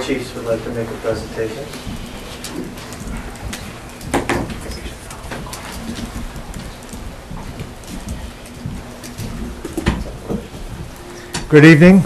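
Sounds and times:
rustling: 0.0s - 11.6s
light knocks of people moving: 0.0s - 12.0s.

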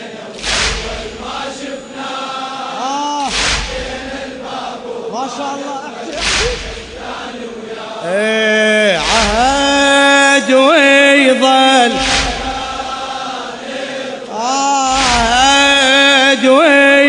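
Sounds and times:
men's chorus chanting: 0.0s - 17.0s
chest-beating thuds: 0.3s - 2.1s, 3.3s - 4.6s, 6.1s - 7.6s, 9.0s - 9.9s, 11.8s - 13.2s, 14.9s - 15.9s.

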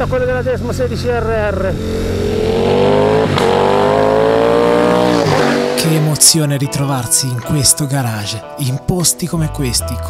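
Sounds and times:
motorcycle engine accelerating: 0.0s - 6.6s.

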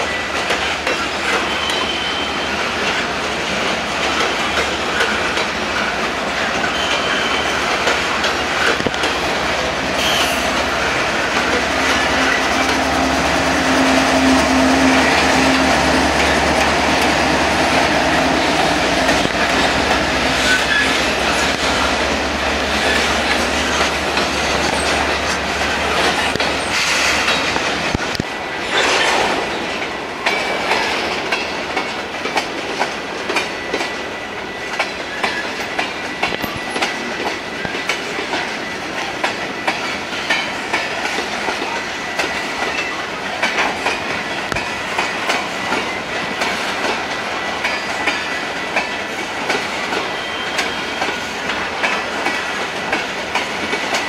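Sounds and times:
locomotive running: 0.0s - 54.0s
high wheel squeal: 1.3s - 2.6s, 6.6s - 7.6s, 10.0s - 10.6s, 20.3s - 22.0s, 50.0s - 51.3s.

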